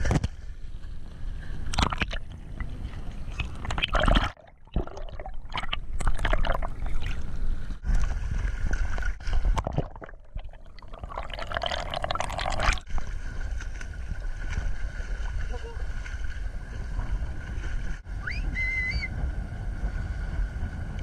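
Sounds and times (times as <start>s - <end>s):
water lapping rumble: 0.0s - 21.0s
water sloshing and gurgling: 0.0s - 21.0s.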